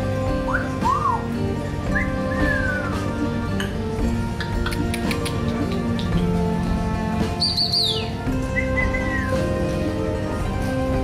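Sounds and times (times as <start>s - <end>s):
background music: 0.0s - 11.0s
parrot whistling: 1.9s - 3.2s, 7.4s - 9.5s.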